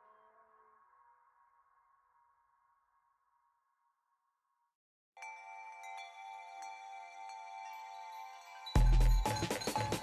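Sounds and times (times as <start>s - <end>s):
electronic music held tones: 8.8s - 10.0s.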